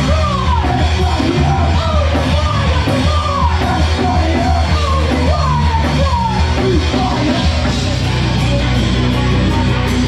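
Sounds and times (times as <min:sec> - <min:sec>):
bass guitar: 0:00.0 - 0:10.0
distorted electric guitar: 0:00.0 - 0:10.0
drums: 0:00.0 - 0:10.0.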